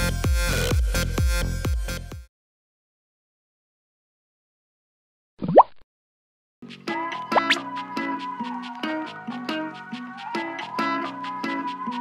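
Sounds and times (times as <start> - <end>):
cartoon bloop rising in pitch: 5.4 - 5.8, 7.4 - 7.6.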